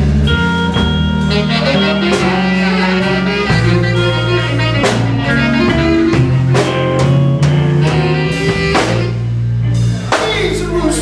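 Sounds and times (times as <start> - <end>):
drum kit steady beat: 0.0 - 11.0
electric bass long low notes: 0.0 - 11.0
electric guitar: 0.0 - 11.0.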